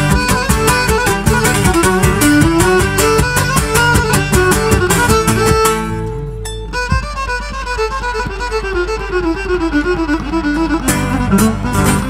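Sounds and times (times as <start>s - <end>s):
steady percussion beat: 0.0s - 8.6s
bowed lyra: 0.0s - 12.0s
strummed lute and mandolin: 0.0s - 12.0s.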